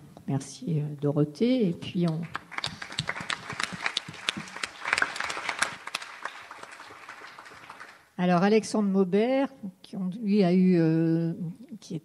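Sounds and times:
audience applauding: 0:02.2 - 0:08.1.

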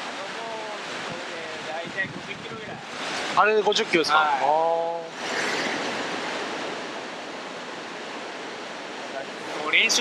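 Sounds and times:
river water flowing: 0:00.0 - 0:10.0.

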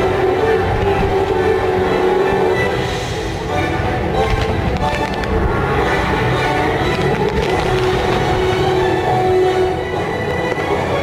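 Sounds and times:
music with long held notes: 0:00.0 - 0:11.0
fireworks bursting and crackling: 0:04.1 - 0:09.8.

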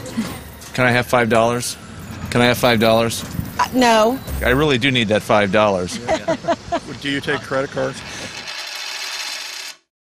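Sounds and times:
high-pitched mechanical rattle: 0:07.8 - 0:09.9.

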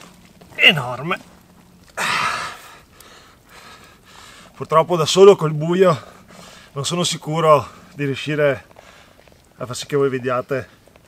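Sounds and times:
man exhaling with effort: 0:02.0 - 0:04.5.

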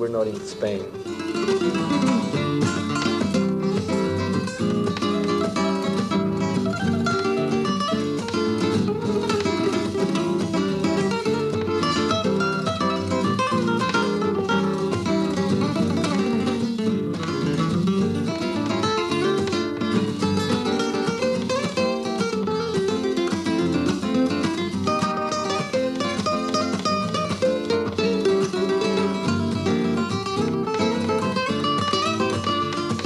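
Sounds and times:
flamenco guitar duet: 0:00.0 - 0:33.0.

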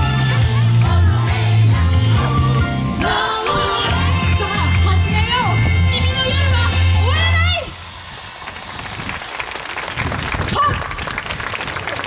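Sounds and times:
audience applauding: 0:08.3 - 0:12.0
person cheering: 0:10.5 - 0:11.0.

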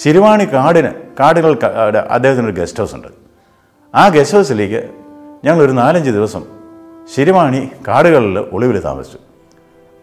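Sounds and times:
man talking: 0:00.0 - 0:03.3, 0:03.9 - 0:09.3.

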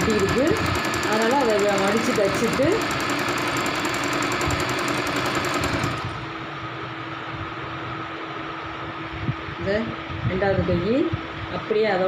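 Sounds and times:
electric sewing machine stitching: 0:00.0 - 0:06.2.

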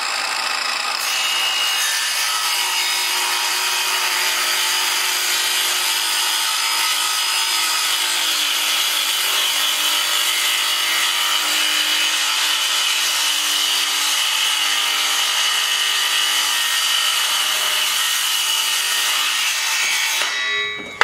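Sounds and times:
circular saw cutting wood: 0:00.0 - 0:20.9.

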